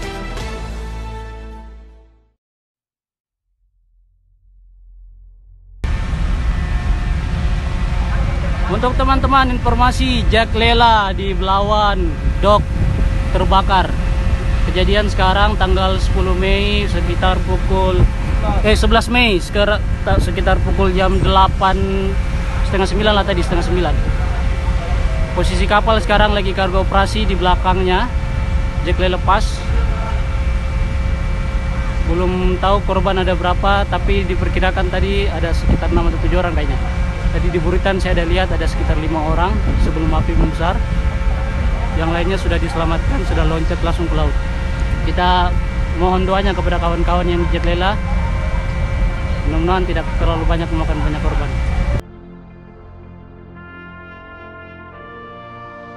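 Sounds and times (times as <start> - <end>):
low rumbling noise: 3.6 - 55.2
faint hum: 4.0 - 55.9.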